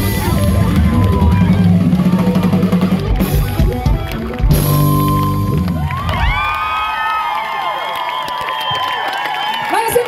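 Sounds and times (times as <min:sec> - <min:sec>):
audience cheering and whooping: 0:00.0 - 0:10.0.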